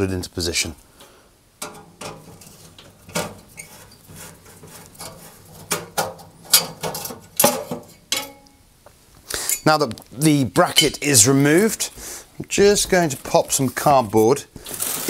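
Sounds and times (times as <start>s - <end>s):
light scratching: 2.0s - 7.2s.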